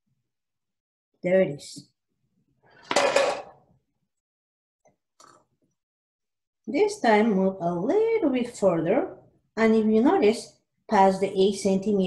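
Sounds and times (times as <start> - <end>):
plastic cup skidding on table: 2.8 - 3.6.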